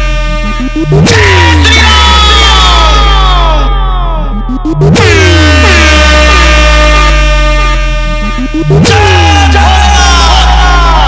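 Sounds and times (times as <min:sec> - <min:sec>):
horn-like tones sliding downward: 0:00.0 - 0:02.8, 0:04.3 - 0:10.2
deep bass drone: 0:00.0 - 0:11.0.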